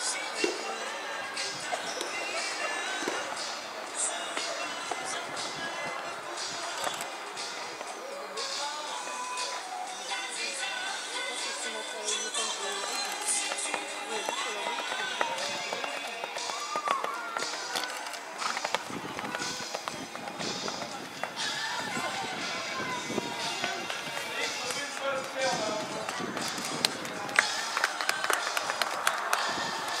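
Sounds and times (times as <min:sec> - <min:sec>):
background music: 0:00.0 - 0:30.0
indistinct voices: 0:00.0 - 0:30.0
horse hooves on sand: 0:13.2 - 0:30.0.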